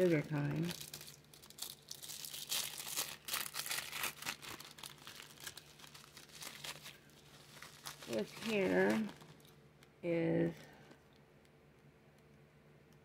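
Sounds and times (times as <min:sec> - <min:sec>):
packaging crinkling and rustling: 0:00.0 - 0:10.0.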